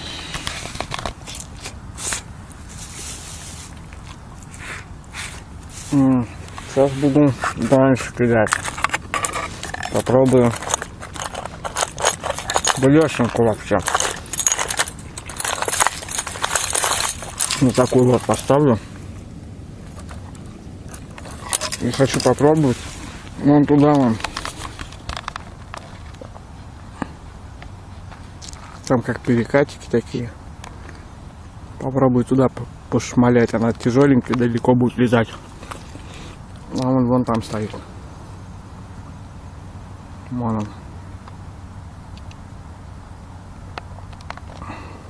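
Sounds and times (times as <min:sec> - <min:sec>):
rustling and crackling in grass: 0:00.0 - 0:30.0, 0:33.9 - 0:38.7
metal lures being handled: 0:08.4 - 0:19.0, 0:19.8 - 0:23.3, 0:24.2 - 0:26.3.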